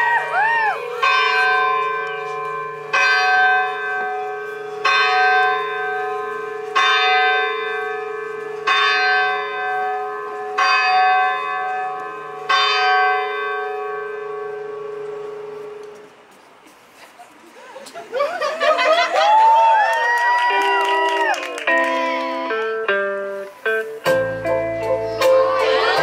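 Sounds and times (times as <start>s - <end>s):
deep church bell tolling: 0.9s - 15.8s.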